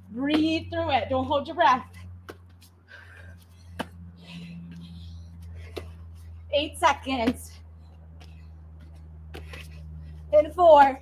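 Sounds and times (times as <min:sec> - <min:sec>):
steady low hum: 0:00.0 - 0:11.0
hard breathing: 0:02.6 - 0:06.5.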